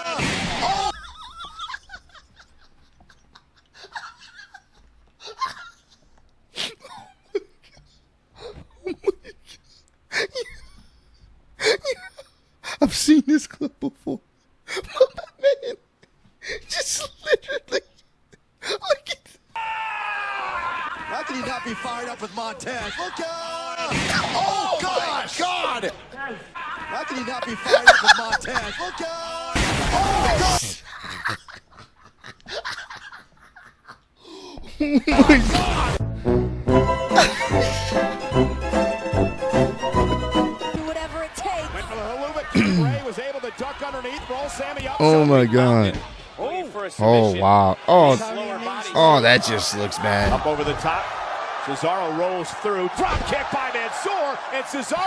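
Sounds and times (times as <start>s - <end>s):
man laughing hard: 0.0s - 5.9s, 26.8s - 29.4s, 30.3s - 36.0s, 37.1s - 38.3s, 42.3s - 43.1s
man exclaiming: 18.8s - 30.9s, 34.8s - 36.0s, 40.9s - 43.9s, 44.6s - 46.0s
man laughing in breathy gasps: 34.2s - 34.9s.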